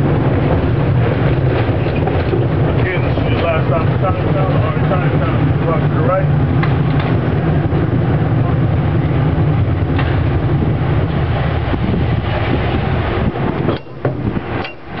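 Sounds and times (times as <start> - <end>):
cable car rumbling on track: 0.0 - 15.0.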